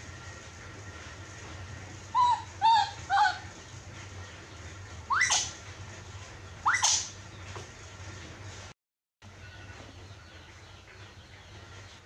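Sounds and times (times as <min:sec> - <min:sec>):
baby monkey crying: 0:02.1 - 0:03.5, 0:05.1 - 0:05.6, 0:06.6 - 0:07.2.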